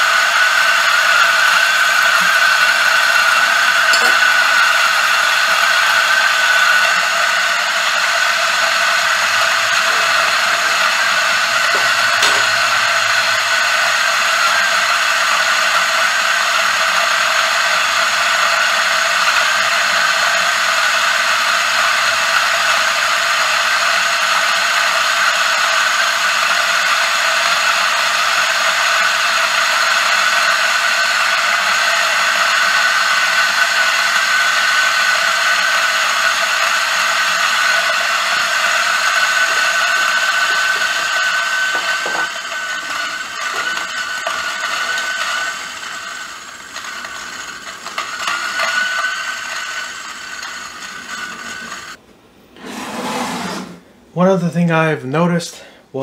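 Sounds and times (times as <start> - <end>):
coffee grinder motor whine: 0.0 - 52.0
grinder knocks: 3.2 - 13.6, 37.3 - 45.8.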